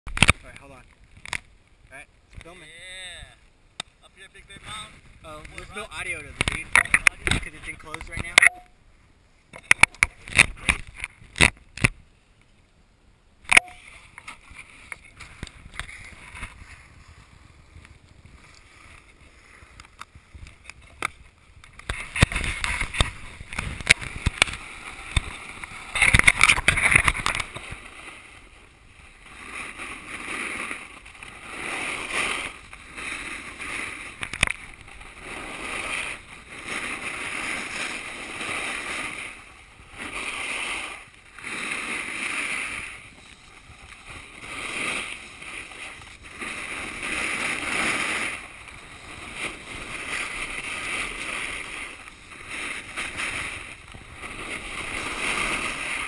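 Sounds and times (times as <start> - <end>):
snowboard edge scraping snow: 4.1 - 8.4, 13.7 - 56.0.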